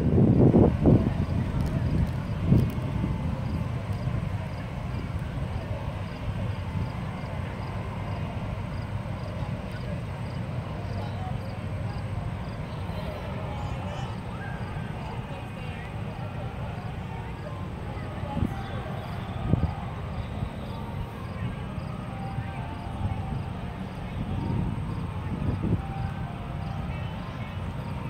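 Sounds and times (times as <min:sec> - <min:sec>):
faint distant voices: 0:00.0 - 0:28.0
steady low rumble: 0:00.0 - 0:28.0.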